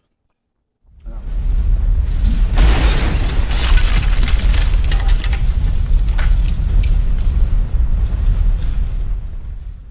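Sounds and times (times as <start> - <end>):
deep rumbling boom: 0.9 - 9.9.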